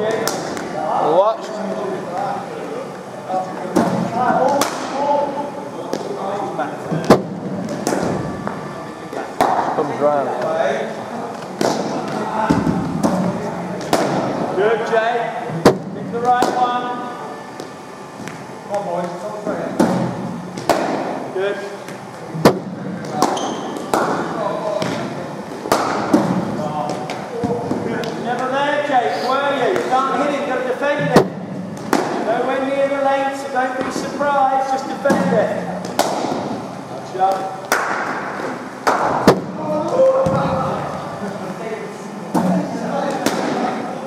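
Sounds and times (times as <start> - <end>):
echoing knocks of ball on bat: 19.8 - 21.2, 22.4 - 26.4, 31.1 - 32.3, 35.1 - 36.6
background voices talking: 21.2 - 37.7.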